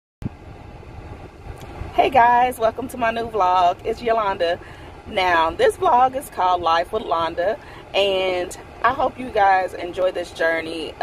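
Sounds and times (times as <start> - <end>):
car interior rumble and hiss: 0.3 - 11.0.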